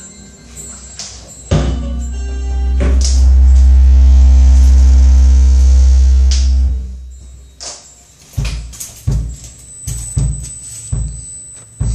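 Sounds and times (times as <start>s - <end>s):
band holding a deep note: 1.5s - 7.4s
cymbal crash: 1.5s - 7.5s.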